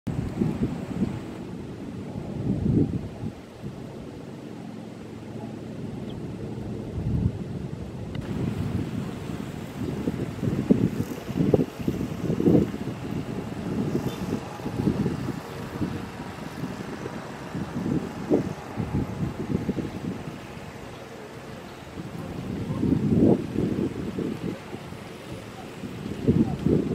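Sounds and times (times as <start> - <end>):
wind buffeting microphone: 0.1 - 26.9.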